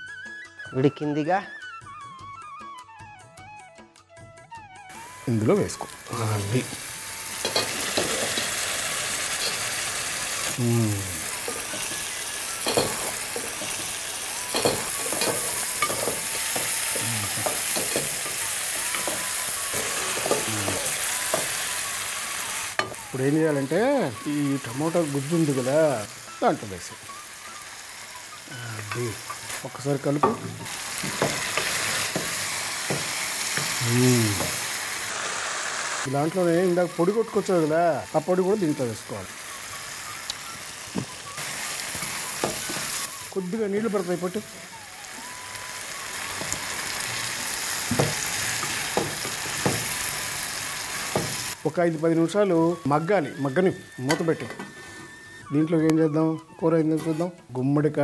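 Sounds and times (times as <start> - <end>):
food sizzling in oil: 4.9 - 55.8
spoon scraping a metal pot: 57.0 - 57.5.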